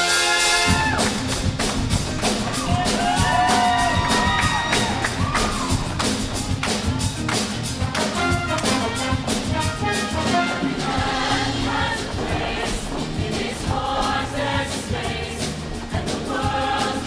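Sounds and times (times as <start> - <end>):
live band up-tempo beat: 0.0 - 17.0
choir singing: 10.2 - 17.0.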